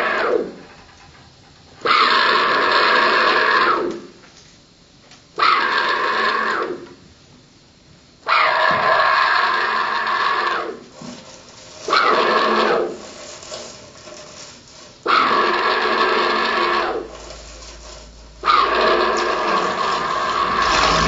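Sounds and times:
rasping hissy electronic noise bursts: 10.8 - 21.0.

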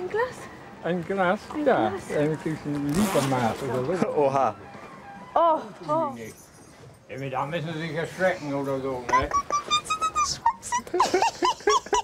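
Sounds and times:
woman laughing high-pitched: 9.1 - 12.0.

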